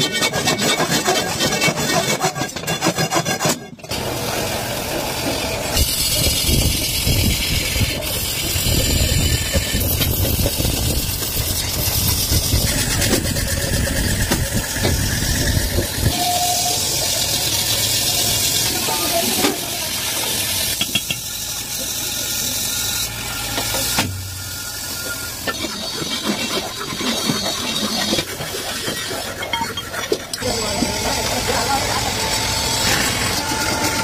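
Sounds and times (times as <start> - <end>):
cutting tool scraping metal: 0.0 - 34.0
lathe motor running: 3.9 - 26.5, 30.4 - 34.0.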